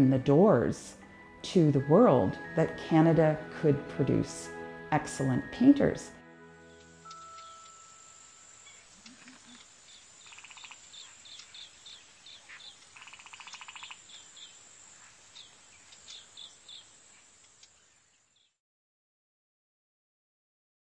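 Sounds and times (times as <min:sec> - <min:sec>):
birds chirping: 0:06.6 - 0:18.6
faint steady hiss: 0:06.7 - 0:18.6
buzzy bird trills: 0:07.2 - 0:18.1.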